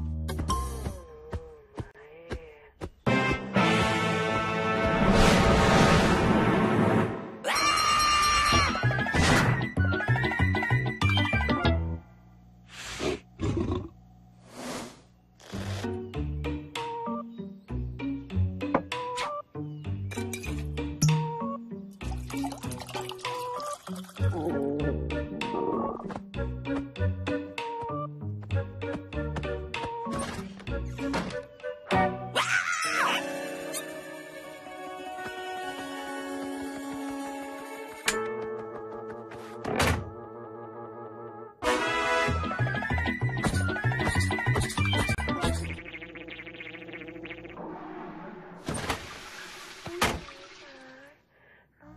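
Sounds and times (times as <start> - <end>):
background music: 3.0 - 12.1, 15.5 - 45.8.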